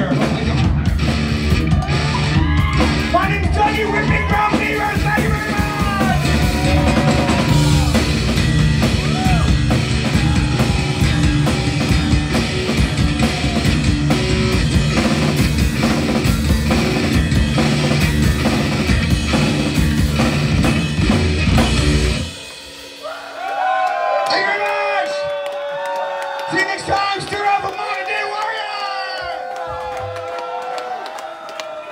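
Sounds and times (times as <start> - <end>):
rock band playing loudly: 0.0 - 25.2
crowd shouting and whooping: 1.6 - 15.0, 23.0 - 31.9.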